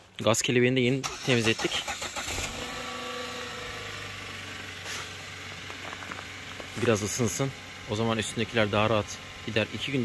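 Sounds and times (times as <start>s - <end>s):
car engine idling: 1.0s - 10.0s.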